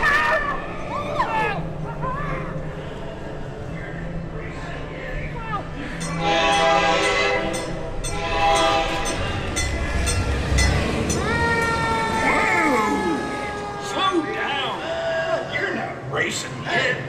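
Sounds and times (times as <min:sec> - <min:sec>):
train horn chord blasts: 0:06.0 - 0:12.2.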